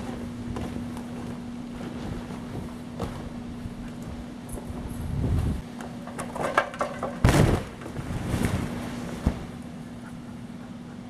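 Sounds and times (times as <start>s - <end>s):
steady low hum: 0.0s - 11.0s
wind buffeting microphone: 3.3s - 5.7s.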